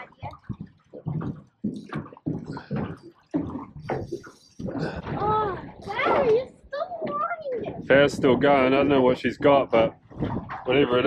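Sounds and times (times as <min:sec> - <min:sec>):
water slapping against boat hull: 0:00.0 - 0:11.0.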